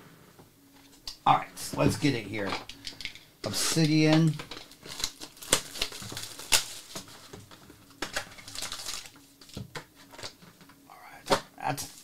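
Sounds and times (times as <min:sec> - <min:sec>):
plastic wrapping crinkling: 0:03.7 - 0:10.4.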